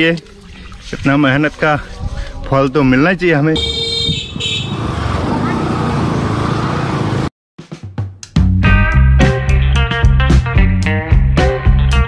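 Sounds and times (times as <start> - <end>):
vehicle noise: 1.9 - 7.3.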